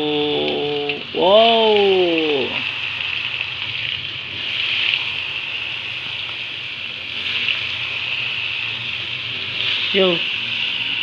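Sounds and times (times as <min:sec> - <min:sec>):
food sizzling in hot oil: 0:00.0 - 0:11.0.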